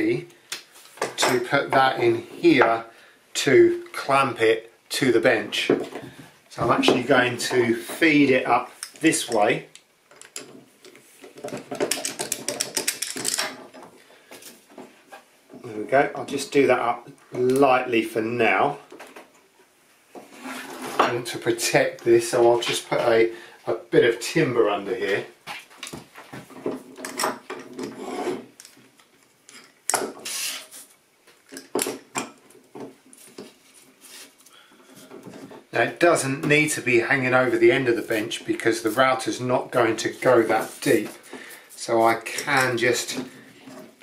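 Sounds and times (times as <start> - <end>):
metal clamp clicking and rattling: 9.7 - 10.6, 11.4 - 13.8
clamp scraping on wood: 20.2 - 21.2, 27.7 - 28.5.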